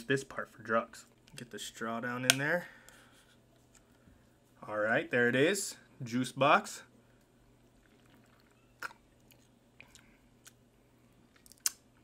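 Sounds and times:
mouth clicks and lip smacks: 0:07.8 - 0:10.6, 0:11.3 - 0:12.0.

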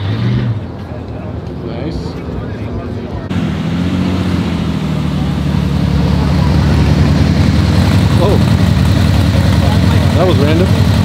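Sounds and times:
dune buggy engine drone: 0:00.0 - 0:11.0.

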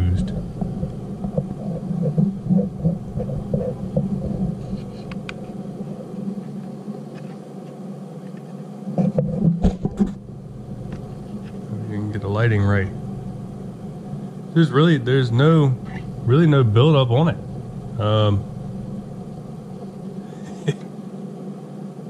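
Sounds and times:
steady low hum: 0:00.0 - 0:22.0
murmured voice: 0:18.0 - 0:18.5.

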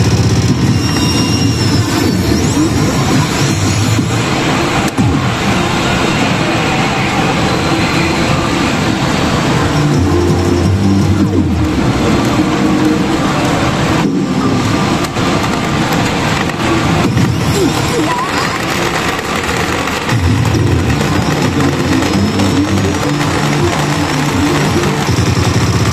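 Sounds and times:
pachinko machine effects and music: 0:00.0 - 0:06.6, 0:07.3 - 0:25.9
loud parlour din: 0:00.0 - 0:25.9.

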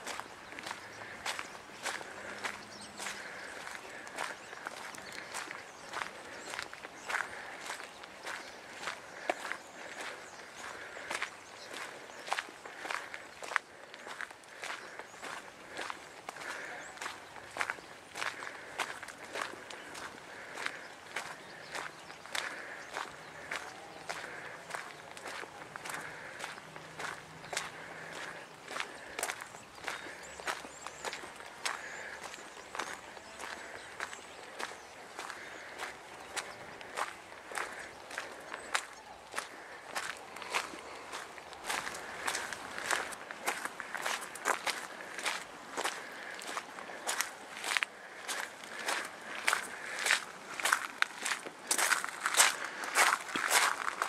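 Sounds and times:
footsteps crunching on gravel: 0:00.0 - 0:54.0.

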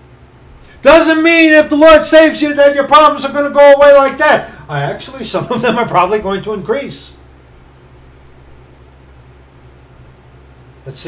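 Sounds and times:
faint hiss: 0:00.0 - 0:11.0
low hum: 0:00.0 - 0:11.0.

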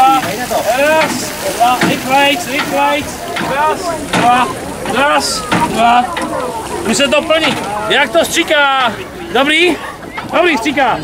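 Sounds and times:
water spraying from a hose: 0:00.0 - 0:09.8
voices calling out: 0:00.0 - 0:11.0.

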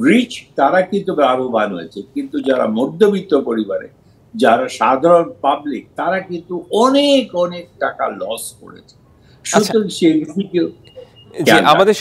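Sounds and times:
man talking: 0:00.0 - 0:10.8, 0:11.4 - 0:12.0
faint high beep: 0:10.3 - 0:11.7.

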